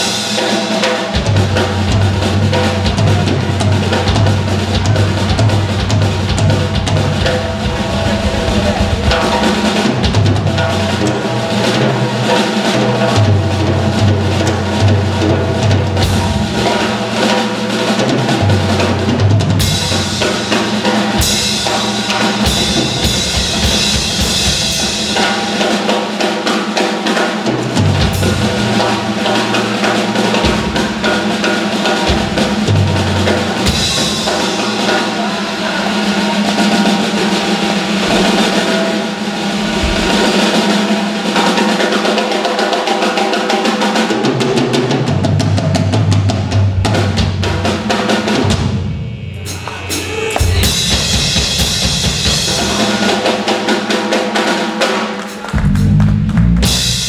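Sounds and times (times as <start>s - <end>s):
loud cymbal wash: 0.0s - 44.4s
busy drumming: 0.0s - 57.0s
live blues band: 0.0s - 57.0s
low bass line: 5.3s - 10.9s, 38.0s - 41.0s, 55.6s - 57.0s.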